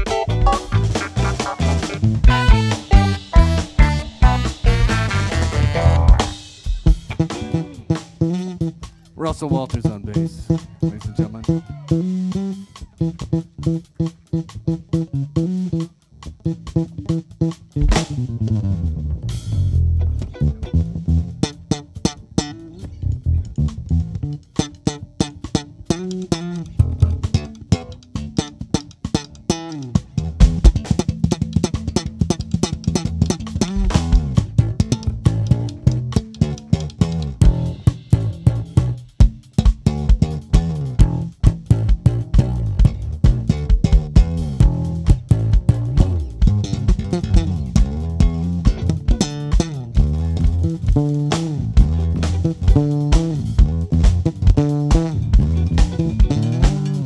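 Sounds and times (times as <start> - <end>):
drum kit: 0.0 - 57.0
electric bass guitar solo: 0.0 - 57.0.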